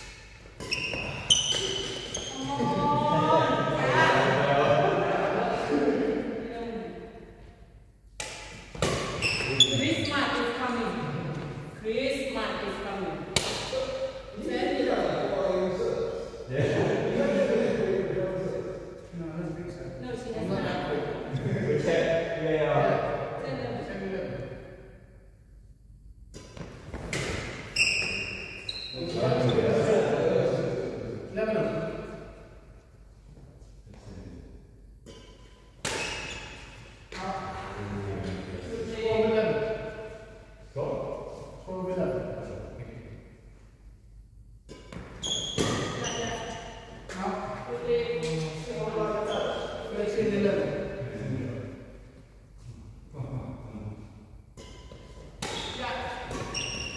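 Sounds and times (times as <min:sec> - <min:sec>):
racket hitting shuttlecock: 0:00.0 - 0:02.3, 0:08.1 - 0:09.6, 0:13.3 - 0:14.2, 0:26.3 - 0:28.6, 0:35.0 - 0:37.2, 0:44.6 - 0:47.2, 0:54.5 - 0:56.9
shoes squeaking on court floor: 0:00.0 - 0:02.6, 0:08.8 - 0:10.4, 0:26.9 - 0:29.6, 0:35.1 - 0:36.8, 0:44.9 - 0:46.8, 0:49.2 - 0:49.8, 0:54.6 - 0:56.9
indistinct voices echoing: 0:00.3 - 0:07.4
players talking with echo: 0:02.3 - 0:07.3, 0:09.5 - 0:24.7, 0:29.0 - 0:32.2.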